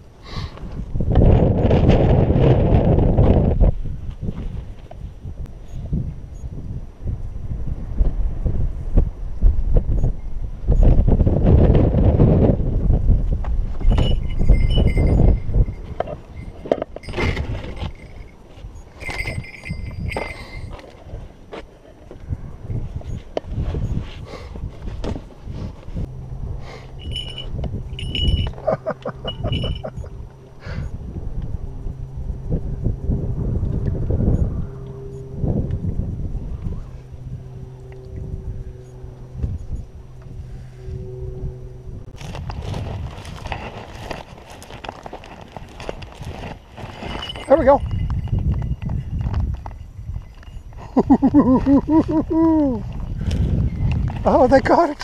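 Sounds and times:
steady low hum: 0.0 - 55.0
wind buffeting microphone: 0.0 - 55.0
metallic clinks and ringing: 13.8 - 21.2, 26.8 - 30.3, 44.7 - 52.8.

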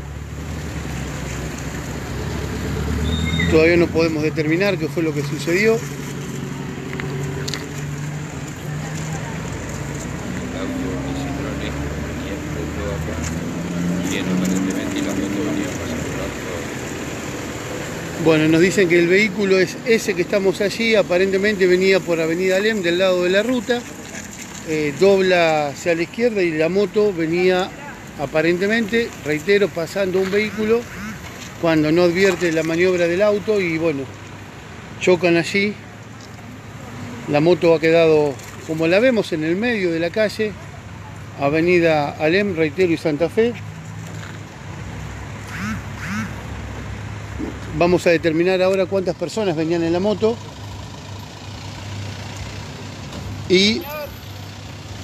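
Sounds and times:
street noise: 0.0 - 55.0
vehicle running: 0.0 - 55.0
faint voices of bystanders: 6.9 - 17.2, 18.1 - 34.1, 35.7 - 43.1, 53.4 - 54.6
voice calls in background: 53.6 - 54.3.

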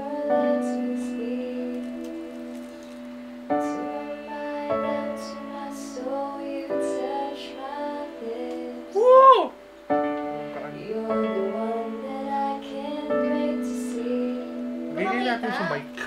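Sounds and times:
woman singing karaoke: 0.0 - 2.8, 3.5 - 9.0, 10.8 - 15.8
backing track with chords: 0.0 - 16.0.

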